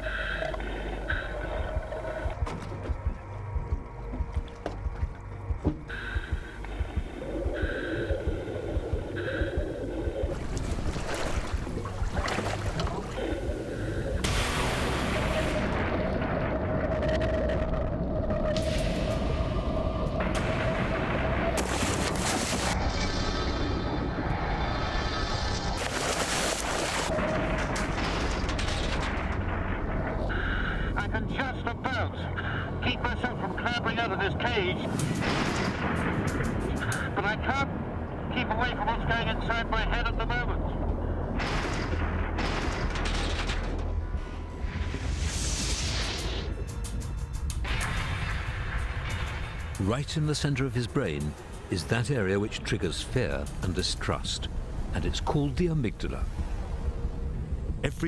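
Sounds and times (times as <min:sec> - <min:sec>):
wind: 0:00.0 - 0:58.0
water rushing and splashing: 0:06.5 - 0:16.2, 0:20.2 - 0:28.2
person's voice: 0:49.8 - 0:56.3.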